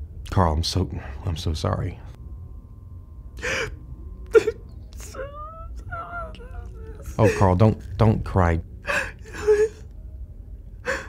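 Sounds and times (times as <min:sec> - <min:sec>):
person sobbing gasp: 0:03.4 - 0:07.5, 0:08.8 - 0:09.8.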